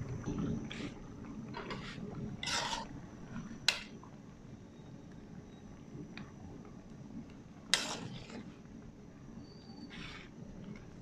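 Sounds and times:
broth bubbling in a pan: 0.0 - 11.0.

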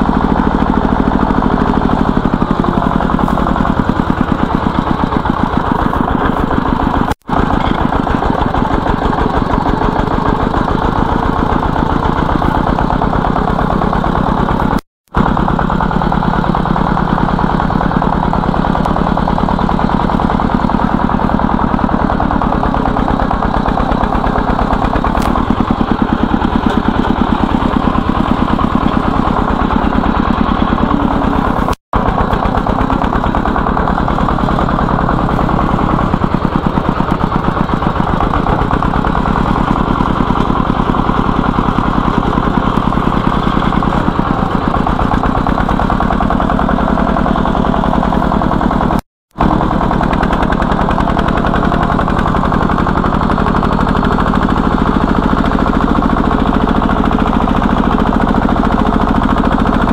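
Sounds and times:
diesel engine chugging: 0.0 - 59.9.

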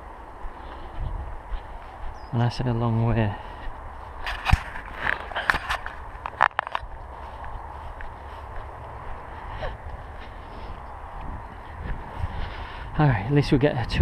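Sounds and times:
wind on microphone: 0.0 - 2.3, 2.9 - 14.0
footsteps in long grass: 0.0 - 13.2.

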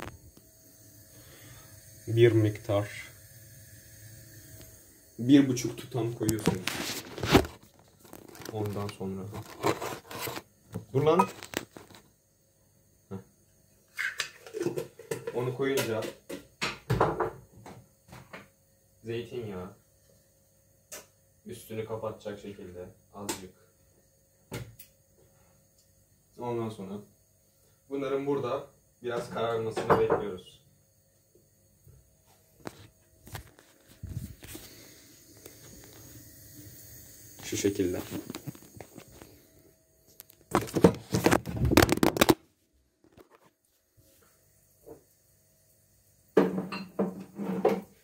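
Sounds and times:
phone rubbing and scraping: 9.3 - 10.5
kitchen things clattering on counter: 14.0 - 17.4, 46.4 - 47.9.

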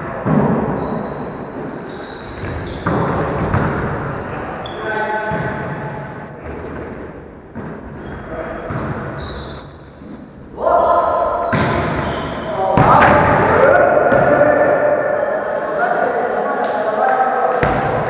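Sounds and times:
players calling out: 10.5 - 18.0
volleyball being struck: 11.5 - 12.0, 17.6 - 18.0.

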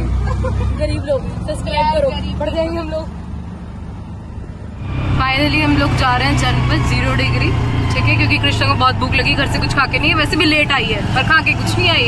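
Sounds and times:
auto-rickshaw engine rumble: 0.0 - 12.0.

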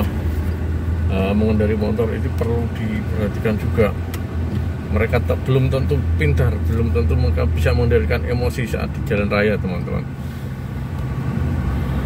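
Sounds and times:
car interior rumble: 0.0 - 12.0.

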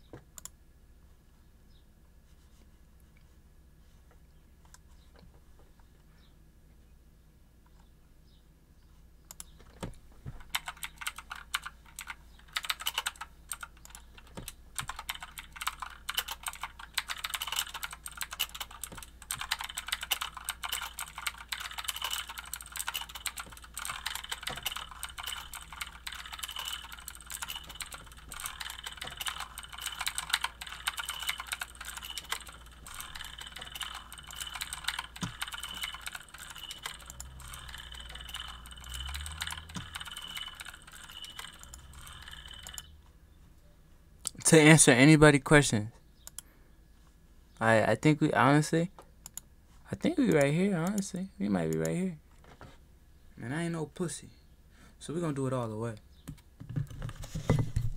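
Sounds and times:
keyboard keys clicking: 9.3 - 42.9.

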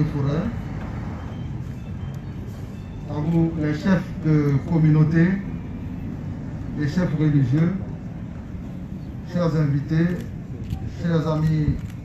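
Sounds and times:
street background rumble with hiss: 0.0 - 12.0.

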